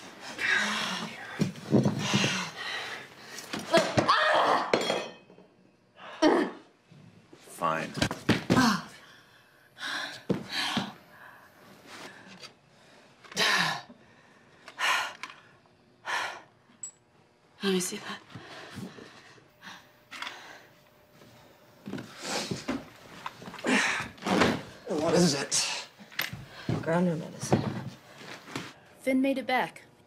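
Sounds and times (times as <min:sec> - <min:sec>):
woman groaning: 0:06.0 - 0:06.7, 0:08.5 - 0:09.0, 0:23.6 - 0:24.2
woman gasping and groaning: 0:08.5 - 0:09.2, 0:13.3 - 0:14.0, 0:23.6 - 0:24.2.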